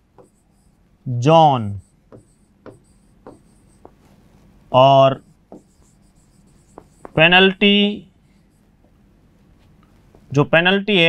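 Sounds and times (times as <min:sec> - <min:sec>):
marker pen writing on whiteboard: 0:00.0 - 0:00.9, 0:01.6 - 0:10.3.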